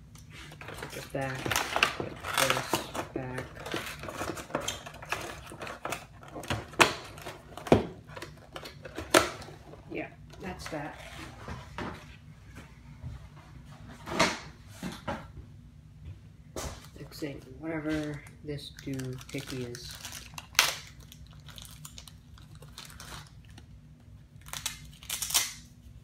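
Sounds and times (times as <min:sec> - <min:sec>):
packaging rustling: 0:00.4 - 0:09.8, 0:17.9 - 0:23.7.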